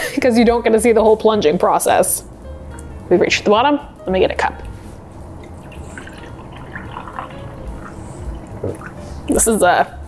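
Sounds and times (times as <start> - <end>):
coffee trickling into glass: 5.4 - 9.0.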